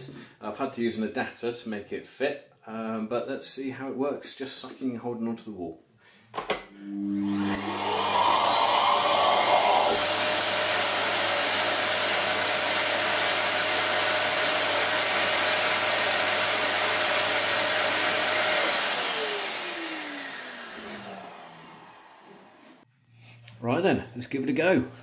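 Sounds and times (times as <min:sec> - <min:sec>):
vacuum cleaner running: 0:06.7 - 0:22.8.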